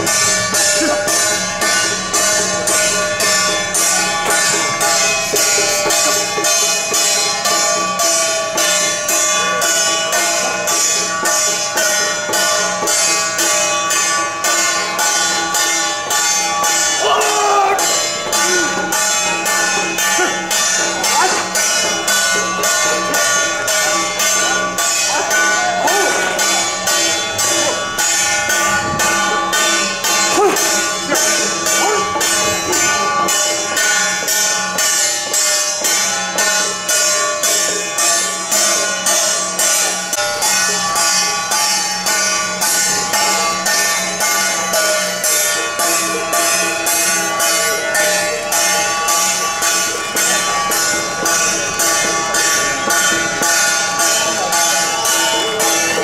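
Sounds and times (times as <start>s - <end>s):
metal percussion beat: 0.0s - 56.0s.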